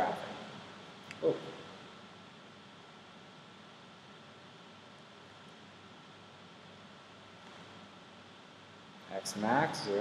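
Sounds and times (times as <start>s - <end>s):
faint room tone hiss: 0.0s - 10.0s.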